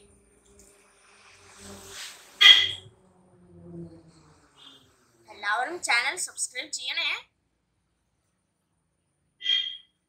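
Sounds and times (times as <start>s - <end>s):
faint buzzing hum: 0.0s - 6.4s
background hiss: 0.2s - 2.6s.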